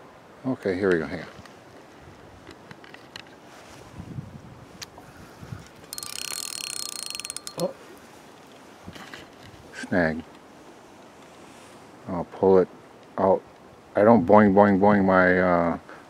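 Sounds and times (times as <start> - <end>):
fishing reel ratcheting buzz: 5.9 - 7.7.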